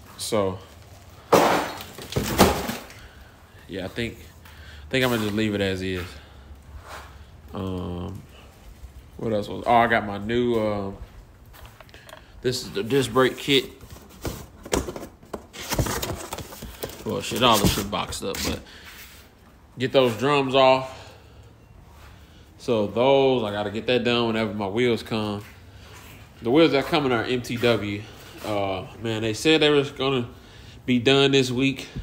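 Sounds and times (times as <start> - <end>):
plastic trim clattering crash: 1.3 - 2.9.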